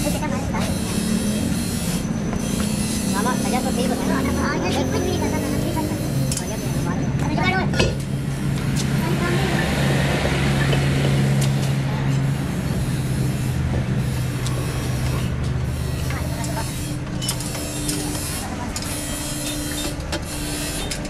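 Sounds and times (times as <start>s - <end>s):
vehicle engine humming: 0.0s - 21.0s.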